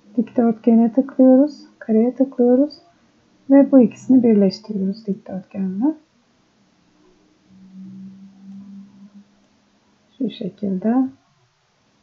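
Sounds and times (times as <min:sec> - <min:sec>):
person humming low note: 0:07.5 - 0:09.4.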